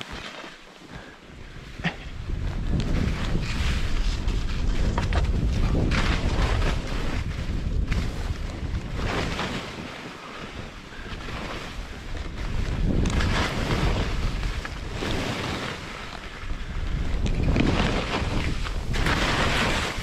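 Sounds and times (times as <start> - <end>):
skis scraping over snow: 0.0 - 20.0
wind rumble on microphone: 1.0 - 20.0.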